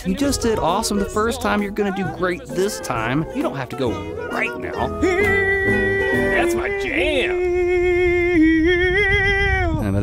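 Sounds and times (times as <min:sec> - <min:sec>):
man singing long held note: 0:03.7 - 0:09.9.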